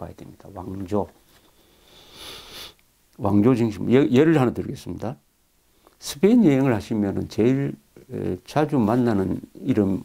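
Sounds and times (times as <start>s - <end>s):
man breathing in through nose: 1.4s - 2.8s.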